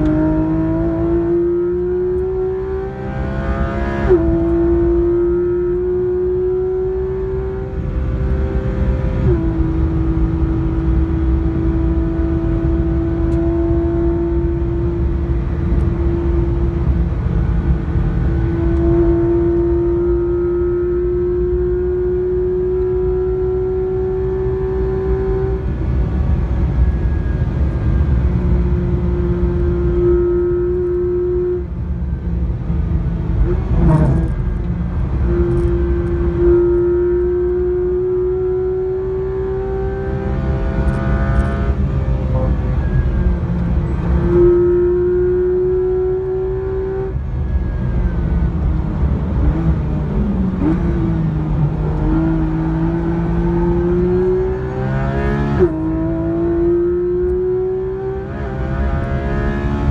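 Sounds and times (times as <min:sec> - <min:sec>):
car engine howling at high revs: 0:00.0 - 0:59.9
road and tyre rumble: 0:00.0 - 0:59.9.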